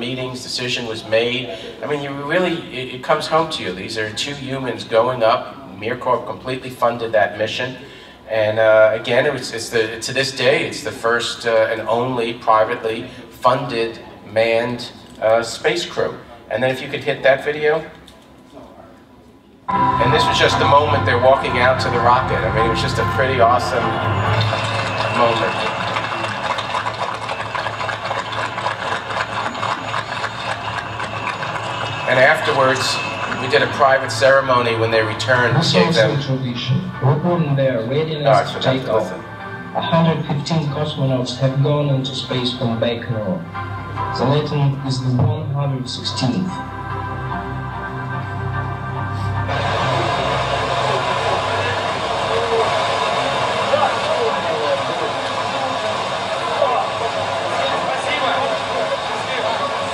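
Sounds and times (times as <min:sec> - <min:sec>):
faint voices: 0:18.5 - 0:41.9, 0:49.5 - 0:59.9
music over speakers: 0:19.7 - 0:41.7, 0:43.4 - 0:56.0.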